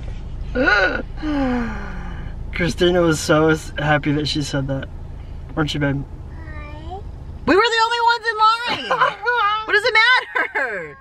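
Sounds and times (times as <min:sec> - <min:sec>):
low car cabin rumble: 0:00.0 - 0:11.0.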